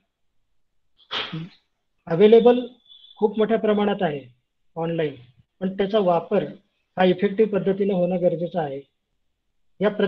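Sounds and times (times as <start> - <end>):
man's short hissy vocal sound: 1.1 - 1.6.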